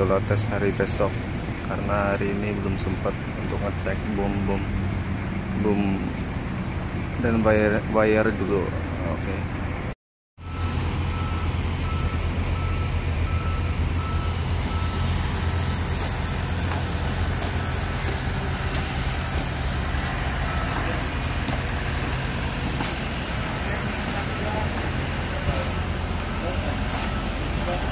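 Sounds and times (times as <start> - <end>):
diesel machinery engine humming: 0.0 - 27.9
high-pitched motion alarm beeping: 10.4 - 22.2, 22.8 - 27.9.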